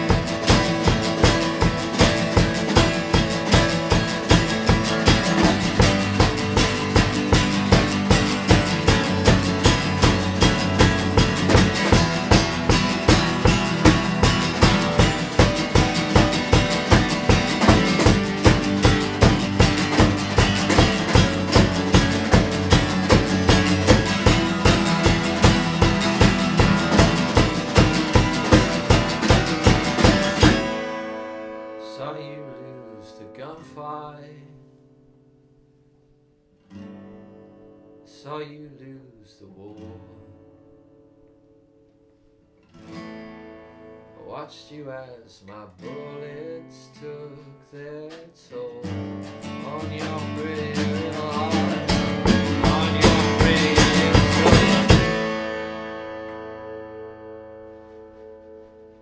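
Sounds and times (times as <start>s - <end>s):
drum kit beat: 0.0s - 31.1s, 49.8s - 56.0s
acoustic guitars strumming: 0.0s - 59.0s.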